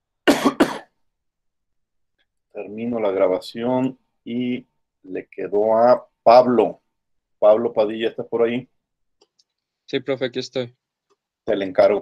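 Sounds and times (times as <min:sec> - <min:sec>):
man coughing: 0:00.2 - 0:01.0.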